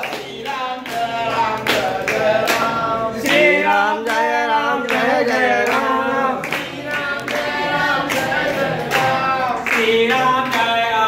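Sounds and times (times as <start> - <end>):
group of people singing: 0.0 - 11.0
rhythmic hand clapping: 0.0 - 11.0.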